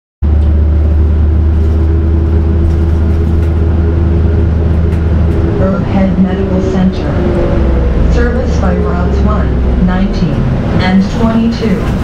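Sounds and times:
bus engine rumbling: 0.2 - 12.0.

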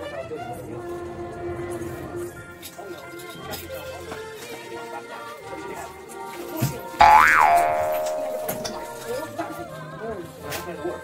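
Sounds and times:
cartoon boing effect: 7.0 - 9.2.

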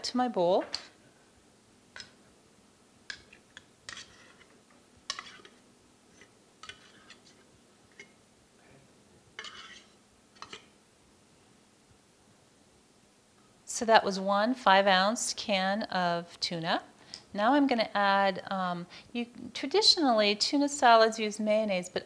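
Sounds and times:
fork scraping metal can: 3.9 - 4.5.

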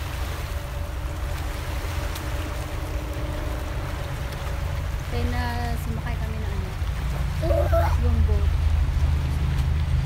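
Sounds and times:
water washing on pebble shore: 0.0 - 10.0
wind rumbling on microphone: 0.0 - 10.0.

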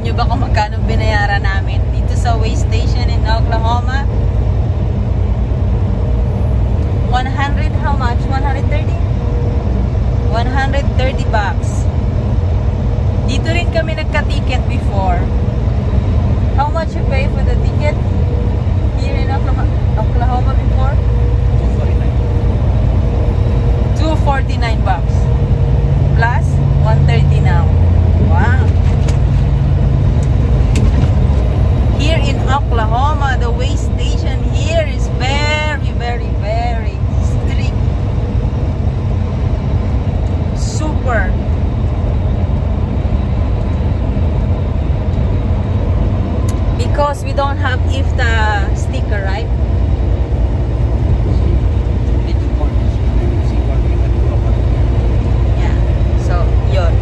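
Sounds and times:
diesel truck engine rumble: 0.0 - 57.0
road noise: 0.0 - 57.0.

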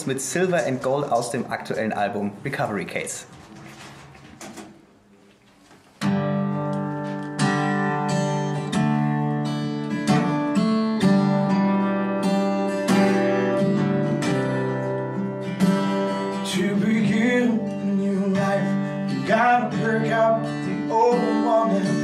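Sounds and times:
acoustic guitar strumming: 6.0 - 22.0.

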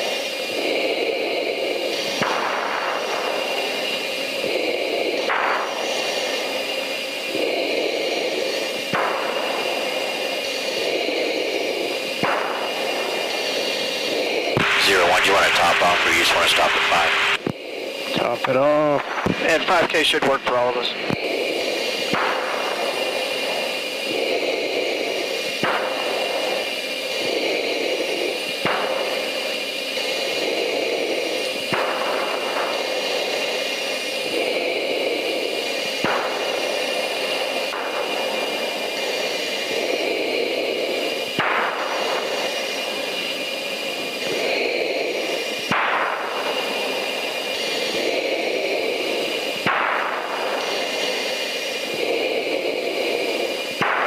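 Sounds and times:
high-pitched whine: 0.0 - 54.0.

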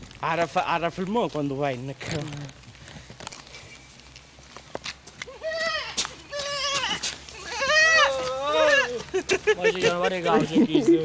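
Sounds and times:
faint clicks and shuffles: 0.0 - 5.3.

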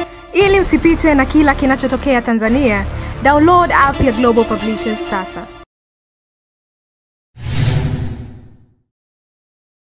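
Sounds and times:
whoosh with low rumble: 7.4 - 8.8.

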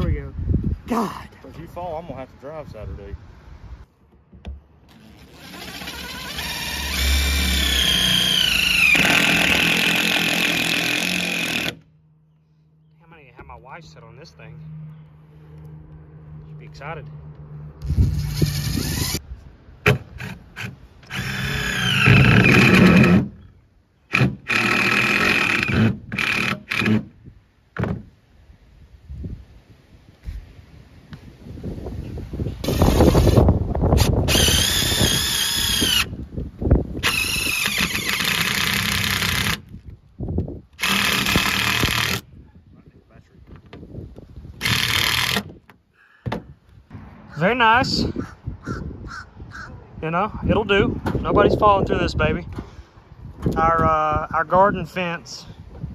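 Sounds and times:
impact driver whining: 4.9 - 11.8, 17.8 - 19.2, 19.9 - 23.4, 34.0 - 36.1, 37.0 - 39.7, 40.8 - 42.2.

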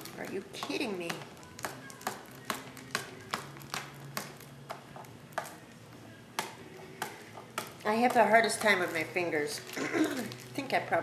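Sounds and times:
fingers tapping plastic wrapping: 0.0 - 10.8.

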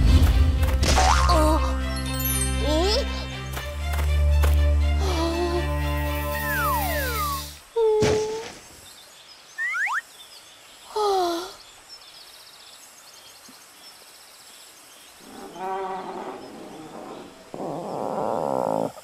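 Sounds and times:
faint outdoor ambience: 2.0 - 19.0
animated dinosaur growls: 15.2 - 19.0.

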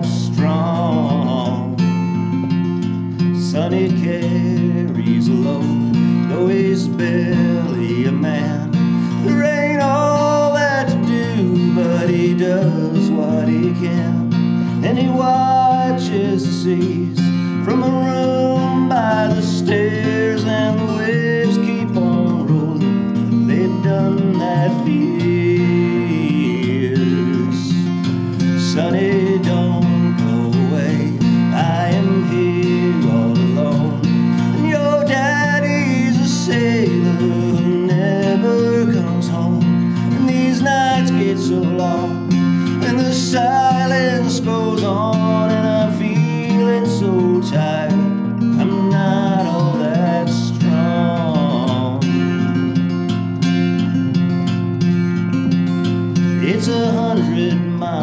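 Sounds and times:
man singing: 0.0 - 54.4, 55.4 - 58.0
strummed acoustic guitar: 0.0 - 58.0.

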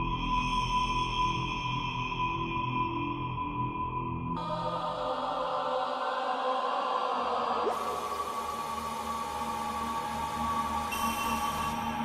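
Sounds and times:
ambient music with held tones: 0.0 - 12.0.

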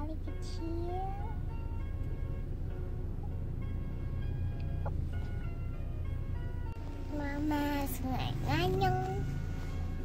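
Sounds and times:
low car cabin rumble: 0.0 - 10.0.

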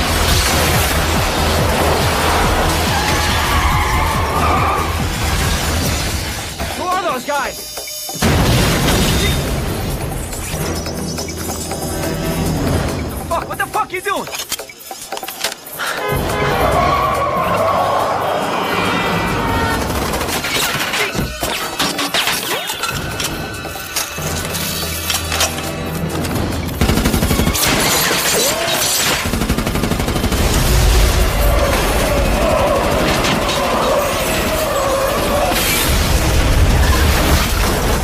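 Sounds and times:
rapid gunfire: 0.0 - 3.2, 19.6 - 21.1, 26.3 - 38.0
glass shattering: 27.5 - 29.2.

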